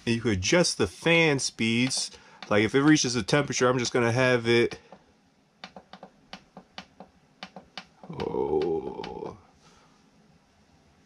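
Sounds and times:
push buttons clicking: 0:01.8 - 0:02.6.

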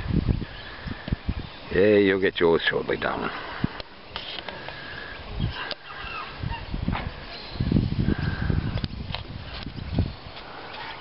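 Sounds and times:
low rumbling on microphone: 0:06.3 - 0:10.7.

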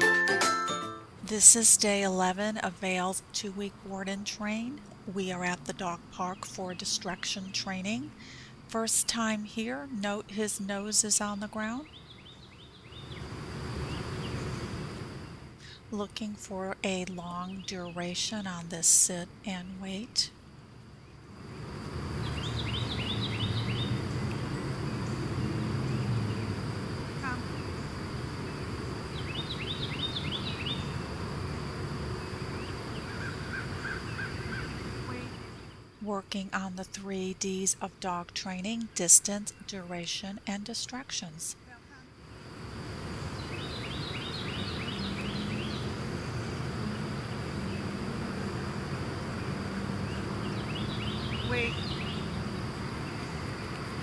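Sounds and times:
bird chirping: 0:10.4 - 0:14.8, 0:22.2 - 0:26.6, 0:28.4 - 0:31.0, 0:32.2 - 0:36.0, 0:43.3 - 0:48.0, 0:49.3 - 0:53.4
high insect drone: 0:10.8 - 0:15.8, 0:16.9 - 0:36.0, 0:41.6 - 0:54.0.

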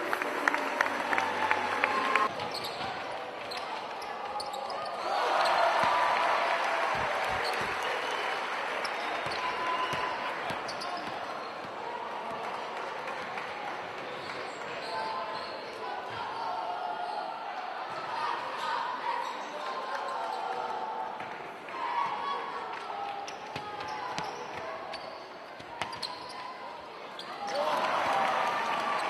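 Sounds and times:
murmur of voices: 0:00.0 - 0:29.0.

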